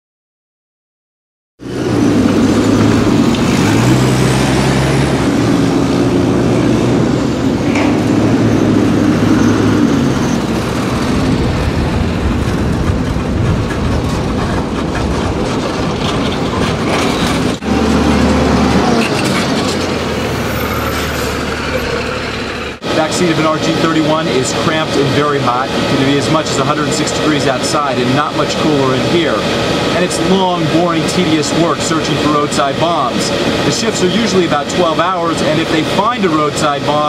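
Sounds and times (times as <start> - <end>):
road and cabin noise: 1.6 - 37.0
truck engine droning: 1.6 - 37.0.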